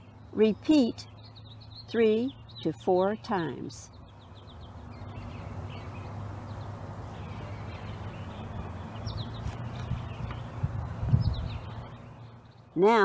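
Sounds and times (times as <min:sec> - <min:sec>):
birds calling faintly: 0:00.0 - 0:13.0
steady low rumbling: 0:03.9 - 0:12.7.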